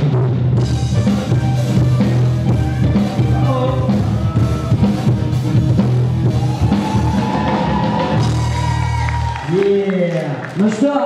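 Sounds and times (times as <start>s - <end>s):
pulsing bass line: 0.0s - 9.4s
guitar: 0.0s - 9.5s
drum kit: 0.0s - 9.6s.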